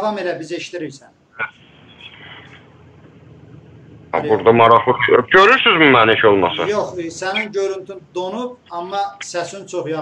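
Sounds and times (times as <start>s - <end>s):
faint call line hiss: 1.2s - 9.5s.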